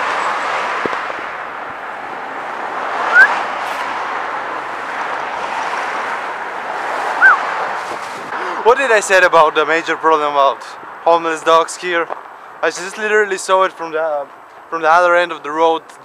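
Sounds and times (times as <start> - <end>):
street traffic passing cars: 0.0 - 16.0.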